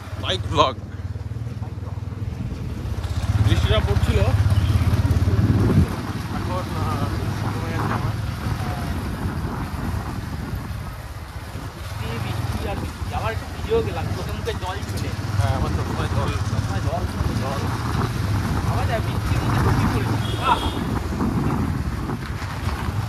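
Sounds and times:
motorcycle engine rumble: 0:00.0 - 0:23.0.

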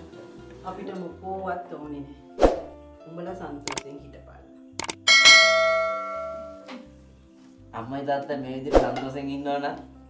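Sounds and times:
bell-like chime ringing: 0:05.1 - 0:06.7.

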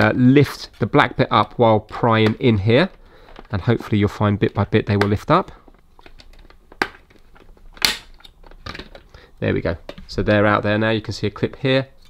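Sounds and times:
plastic clicks and scrapes: 0:00.7 - 0:03.7, 0:04.4 - 0:09.2
plastic clip snapping: 0:06.0 - 0:09.1.

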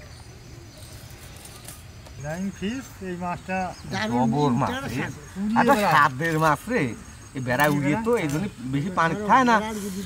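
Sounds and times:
men talking: 0:02.2 - 0:10.0.

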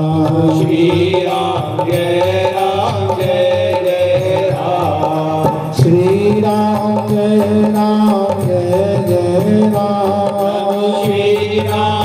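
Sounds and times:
devotional chanting: 0:00.0 - 0:12.0
sustained musical accompaniment: 0:00.0 - 0:12.0.

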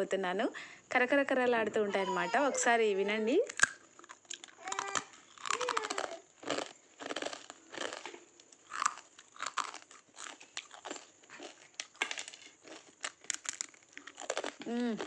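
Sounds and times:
crunchy snack being chewed: 0:03.5 - 0:15.0.

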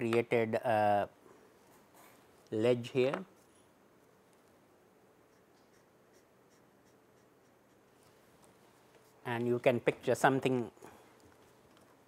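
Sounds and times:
marker strokes on paper: 0:05.3 - 0:09.3.

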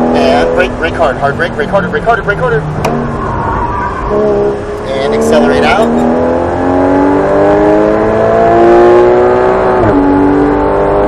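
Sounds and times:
car engine: 0:00.0 - 0:11.0
road noise: 0:00.0 - 0:11.0.

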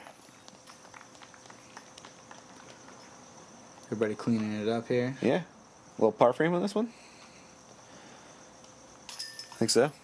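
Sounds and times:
faint steady high tone: 0:02.6 - 0:10.0.

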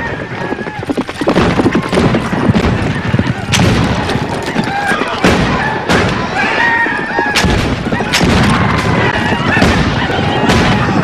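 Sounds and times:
rumbling action noise: 0:00.0 - 0:11.0
gunshots: 0:01.2 - 0:06.4, 0:07.3 - 0:11.0
voices crying out: 0:01.6 - 0:11.0.

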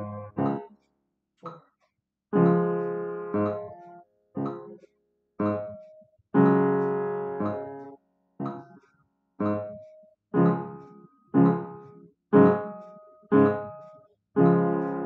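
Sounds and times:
slow piano chords: 0:00.0 - 0:00.8, 0:02.4 - 0:04.8, 0:05.4 - 0:08.8, 0:09.4 - 0:15.0.

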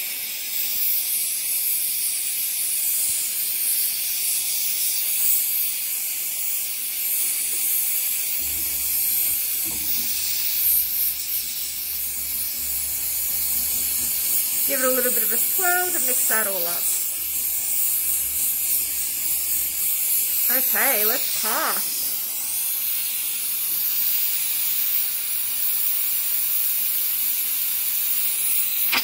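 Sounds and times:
torch flame hissing: 0:00.0 - 0:29.0.

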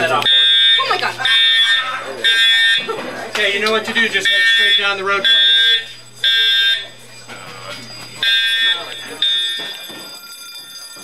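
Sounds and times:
fire alarm horn blasts: 0:00.0 - 0:03.0, 0:03.6 - 0:11.0.

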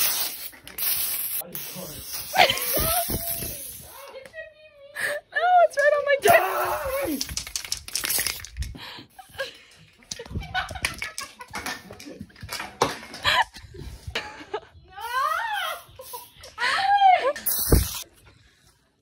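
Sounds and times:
teenagers shrieking and laughing: 0:02.3 - 0:03.8, 0:14.4 - 0:17.4.

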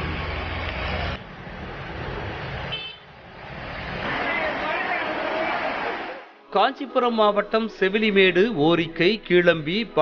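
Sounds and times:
street noise: 0:00.0 - 0:10.0.

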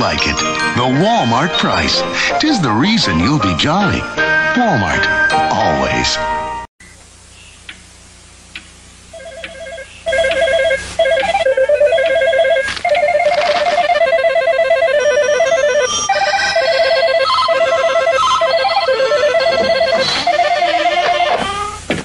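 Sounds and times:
electronic telephones ringing: 0:09.1 - 0:21.4.

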